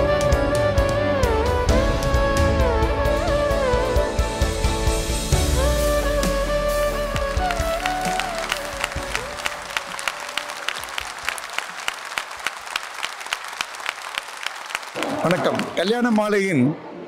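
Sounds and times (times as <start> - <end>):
background music: 0.0 - 12.2
audience clapping: 7.0 - 16.4.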